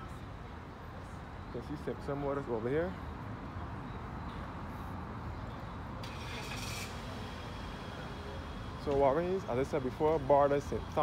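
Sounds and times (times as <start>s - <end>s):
road traffic rumble: 0.0s - 11.0s
brief hiss: 6.0s - 8.0s.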